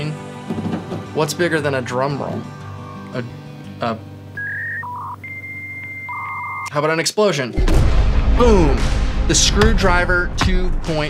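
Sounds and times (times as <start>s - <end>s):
electronic beeps: 4.4s - 6.7s.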